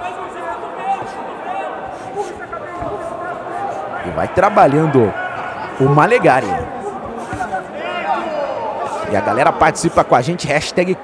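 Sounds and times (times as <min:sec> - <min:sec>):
crowd voices calling out: 0:00.0 - 0:11.0.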